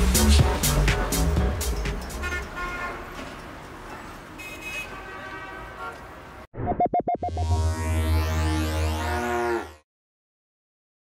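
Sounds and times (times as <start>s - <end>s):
synthesized sci-fi drone and tones: 6.6s - 9.8s.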